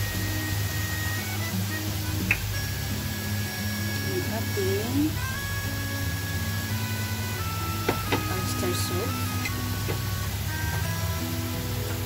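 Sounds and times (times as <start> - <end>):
faint hiss: 0.0 - 12.0
music of held notes: 0.0 - 12.0.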